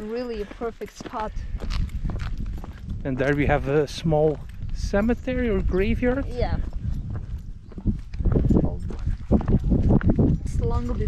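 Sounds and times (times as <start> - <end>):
footsteps scuffing on stone: 0.0 - 11.0
low rumble: 1.3 - 11.0.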